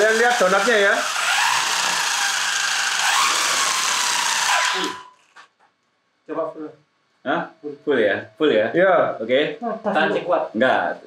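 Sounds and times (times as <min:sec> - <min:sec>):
toy truck motor whining: 0:00.0 - 0:05.4.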